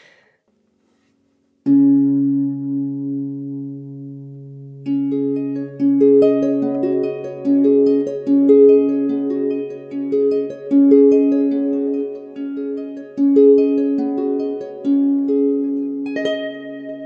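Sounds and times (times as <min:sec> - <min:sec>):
plucked harp melody: 0:01.6 - 0:17.0
harp bass notes ringing: 0:01.7 - 0:17.0.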